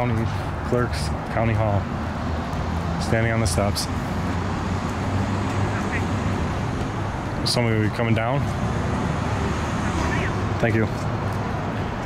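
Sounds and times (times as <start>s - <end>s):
city street traffic rumble: 0.0s - 12.0s.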